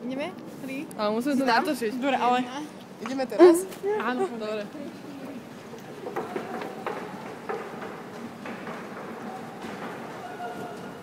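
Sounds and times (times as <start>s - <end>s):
steady background noise: 0.0s - 11.0s
sharp knocks: 6.1s - 10.3s.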